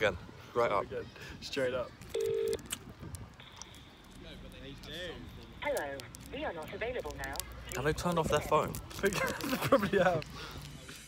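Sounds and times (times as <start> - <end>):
phone ringing tone: 2.1 - 2.6.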